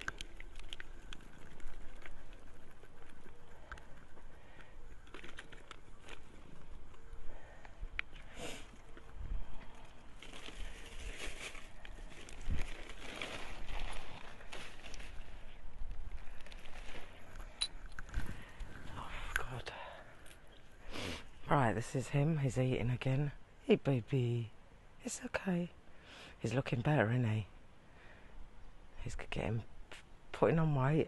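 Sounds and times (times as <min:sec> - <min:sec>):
cat eating from plastic bowl: 0:00.0 - 0:19.5
rustling and crinkling: 0:00.0 - 0:19.5.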